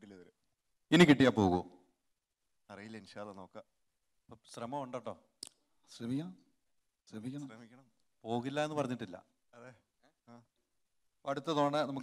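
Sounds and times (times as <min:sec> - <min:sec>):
man speaking: 0:00.0 - 0:01.7, 0:02.7 - 0:03.7, 0:04.3 - 0:05.3, 0:05.9 - 0:06.4, 0:07.1 - 0:10.5, 0:11.3 - 0:12.0.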